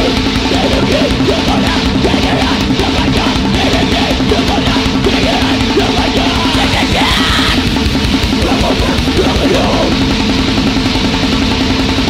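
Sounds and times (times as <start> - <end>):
distorted electric guitar: 0.0 - 12.0
fast drums: 0.0 - 12.0.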